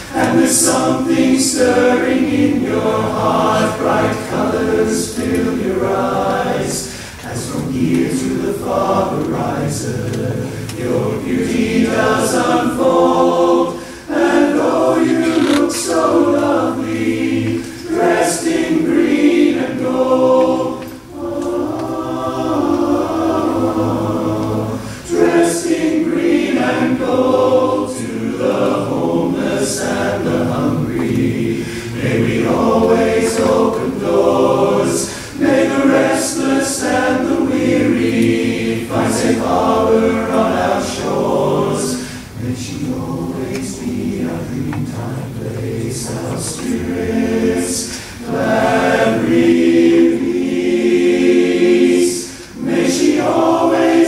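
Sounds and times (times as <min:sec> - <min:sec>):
men's barbershop chorus singing: 0:00.0 - 0:54.0.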